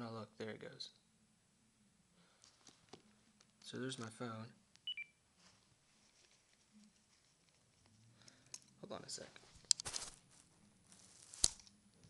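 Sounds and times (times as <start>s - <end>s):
two-note electronic phone beep: 4.9s - 5.1s
faint rustling: 5.3s - 12.0s.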